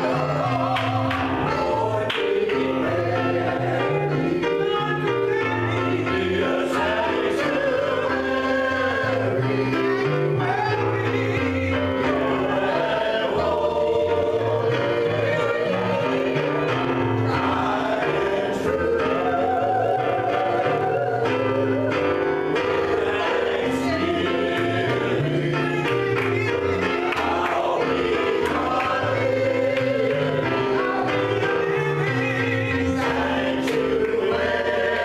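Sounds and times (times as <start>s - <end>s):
choir singing held notes: 0.0s - 35.0s
electric keyboard: 0.0s - 35.0s.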